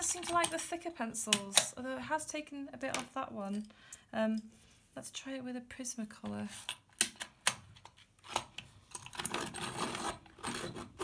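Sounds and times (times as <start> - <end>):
pencil sharpener grinding: 9.1 - 11.0.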